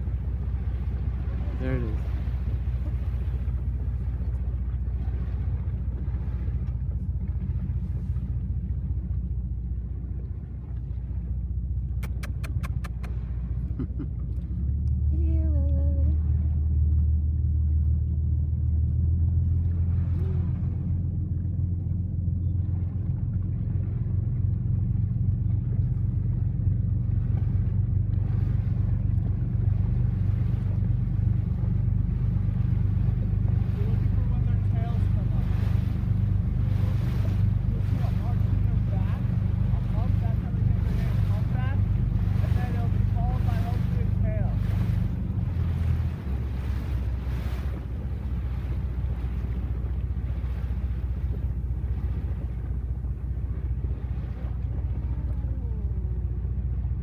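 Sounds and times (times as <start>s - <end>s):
boat engine rumbling: 0.0s - 57.0s.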